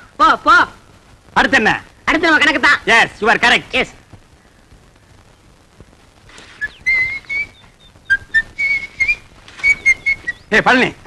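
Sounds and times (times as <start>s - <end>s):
person whistling short notes: 6.6s - 10.4s.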